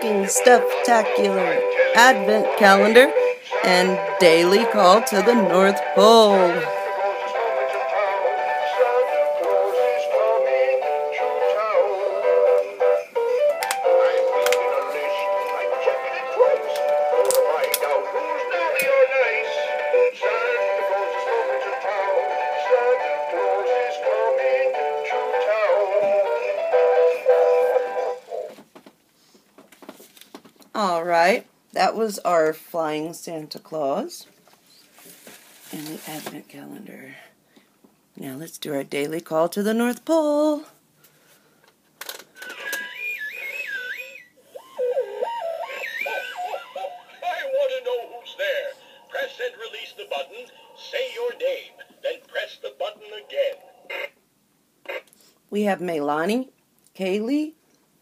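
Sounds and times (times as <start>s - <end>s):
toy playing christmas song: 0.0s - 28.4s, 42.4s - 54.1s
electronic toy tune: 42.5s - 47.6s.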